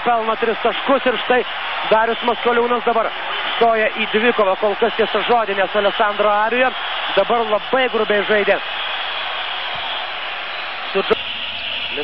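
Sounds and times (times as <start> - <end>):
arena crowd din: 0.0 - 12.0.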